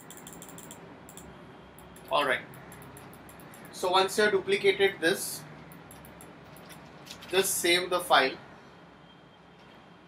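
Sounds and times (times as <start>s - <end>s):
computer mouse and keyboard clicking: 0.0s - 1.3s, 1.9s - 3.8s, 5.7s - 7.4s.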